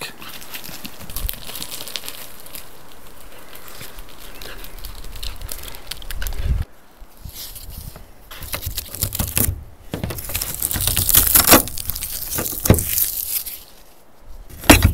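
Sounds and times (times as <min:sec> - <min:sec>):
dog paws running on gravel: 0:00.1 - 0:06.7.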